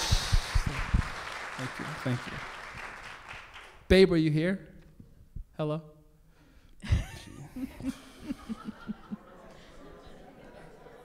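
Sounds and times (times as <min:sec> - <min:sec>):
man chuckling: 0:06.8 - 0:09.5.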